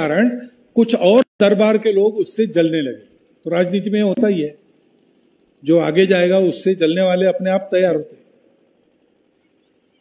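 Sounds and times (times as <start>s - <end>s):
man's amplified speech with echo: 0.0s - 4.6s, 5.6s - 8.2s.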